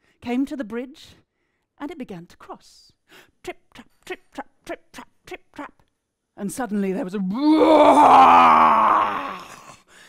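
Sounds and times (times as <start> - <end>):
woman's loud wordless vocal sound: 3.4 - 5.9, 7.2 - 9.4.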